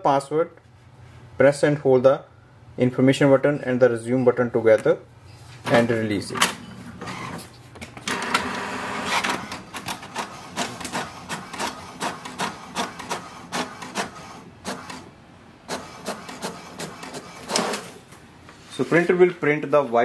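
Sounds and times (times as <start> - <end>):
print carriage strokes: 6.4 - 15.1, 15.7 - 18.0
printer paper feed whirr: 6.4 - 18.0.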